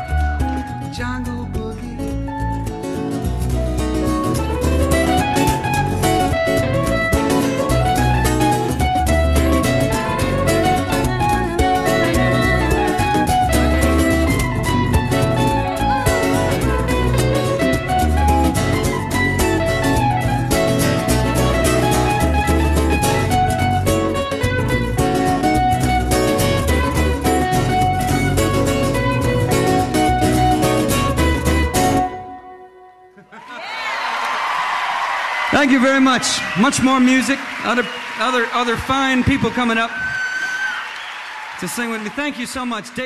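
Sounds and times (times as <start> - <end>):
live band playing: 0.0 - 33.0
fiddle: 4.1 - 32.3.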